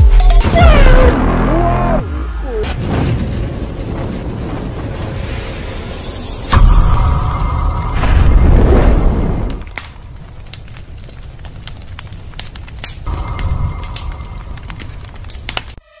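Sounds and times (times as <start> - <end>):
deep rumbling boom: 2.7 - 10.8, 13.0 - 15.8
flames crackling: 2.7 - 15.8.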